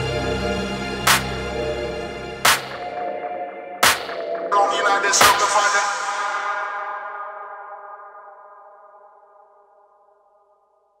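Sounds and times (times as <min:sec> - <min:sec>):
synthesizer chord ringing out: 0:00.0 - 0:05.2.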